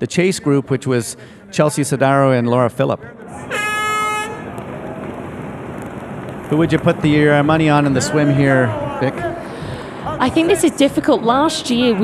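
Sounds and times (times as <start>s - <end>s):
air horn tone: 3.3s - 4.5s
steady noisy wash: 4.2s - 12.0s.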